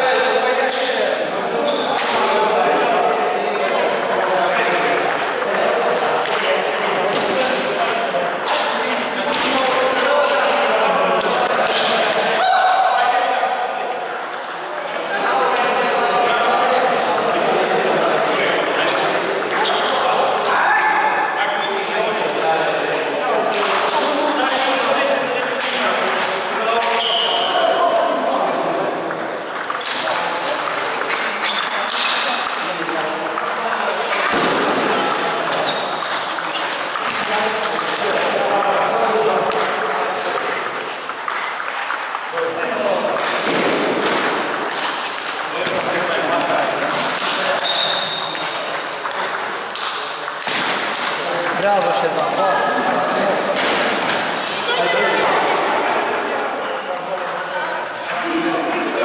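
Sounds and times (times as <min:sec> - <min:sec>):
people's voices: 0:00.0 - 0:59.0
table tennis balls clicking: 0:03.0 - 0:12.4, 0:16.4 - 0:20.5, 0:28.3 - 0:52.4, 0:55.4 - 0:59.0.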